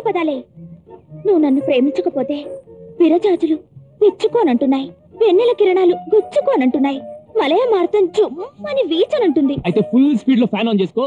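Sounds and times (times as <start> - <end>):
woman speaking: 0.0 - 0.4, 1.2 - 9.6
background music with held note: 0.0 - 11.0.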